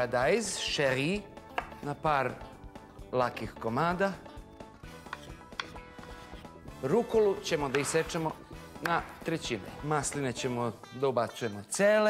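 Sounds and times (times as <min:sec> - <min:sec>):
soft background music: 0:00.0 - 0:12.0
knife chopping on wooden board: 0:01.5 - 0:01.8, 0:05.0 - 0:06.3, 0:07.6 - 0:09.3.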